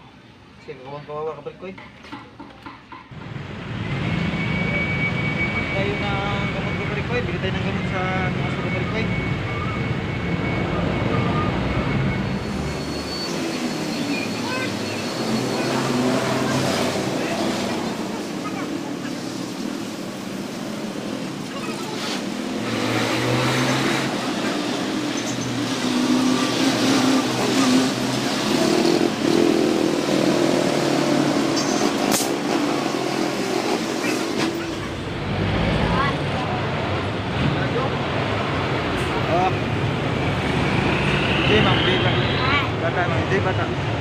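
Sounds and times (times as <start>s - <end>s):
street traffic: 0.0s - 44.0s
vehicle rumbling past: 3.1s - 44.0s
people talking: 5.7s - 9.7s, 10.7s - 11.9s, 14.3s - 19.7s, 21.4s - 22.3s, 27.0s - 28.4s, 35.7s - 38.2s, 39.1s - 39.7s, 41.4s - 43.8s.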